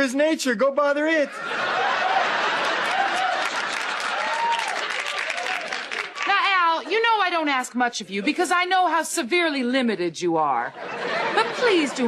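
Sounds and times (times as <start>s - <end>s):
audience applauding: 1.8s - 6.9s.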